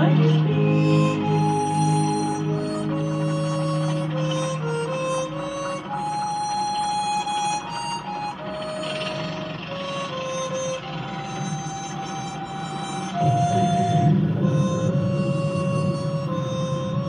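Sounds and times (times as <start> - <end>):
gentle film score music: 0.0 - 17.0.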